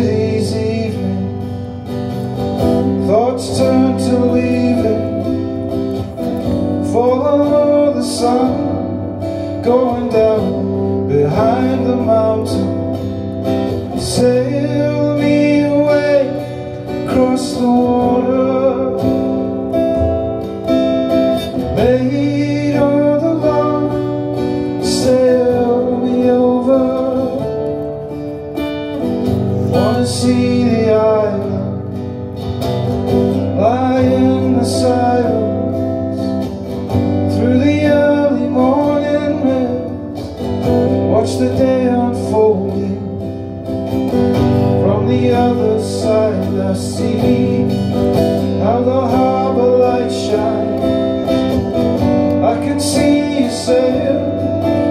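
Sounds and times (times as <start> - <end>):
man singing: 0.0 - 28.4, 29.3 - 32.4, 33.2 - 43.8, 44.4 - 54.9
acoustic guitar strumming: 0.0 - 54.9.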